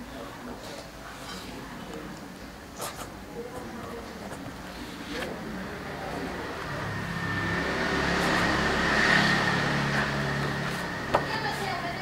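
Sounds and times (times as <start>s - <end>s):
vehicle passing by: 5.6s - 12.0s.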